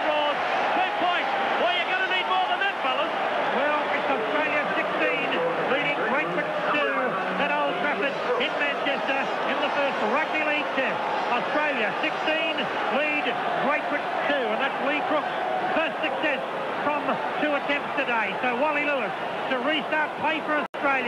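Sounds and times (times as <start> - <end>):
man talking: 0.0 - 21.0
stadium crowd noise: 0.0 - 21.0.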